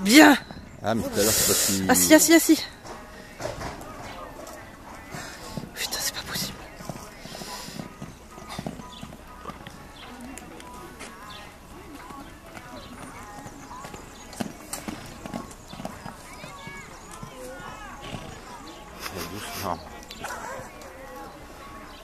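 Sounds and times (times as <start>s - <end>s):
people talking: 0.0s - 2.7s, 16.3s - 21.9s
hoofbeats on sand: 0.0s - 22.0s.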